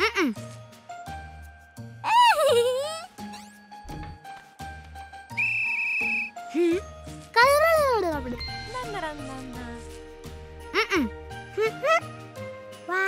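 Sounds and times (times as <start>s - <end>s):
light cartoon music: 0.0s - 13.0s
high whistle-like tone: 5.3s - 6.4s.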